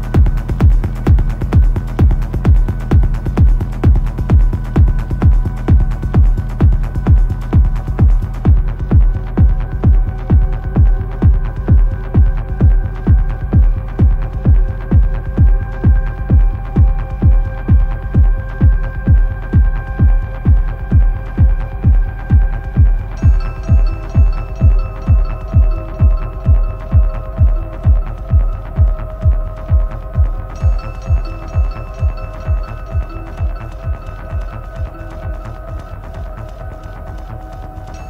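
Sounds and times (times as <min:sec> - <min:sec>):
four-on-the-floor kick drum: 0:00.0 - 0:38.0
sustained synth chords: 0:00.0 - 0:38.0.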